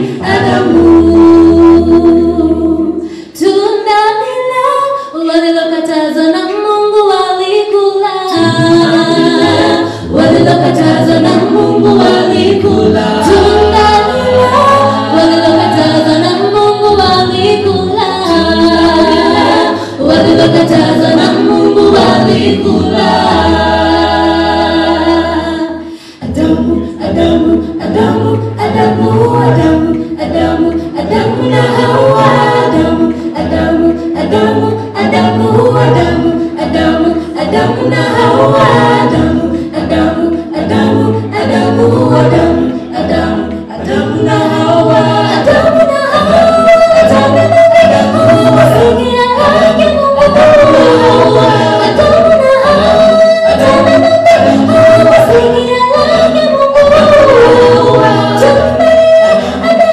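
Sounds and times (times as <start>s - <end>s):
a cappella group singing in harmony: 0.0s - 59.9s
vocal percussion: 0.0s - 59.9s.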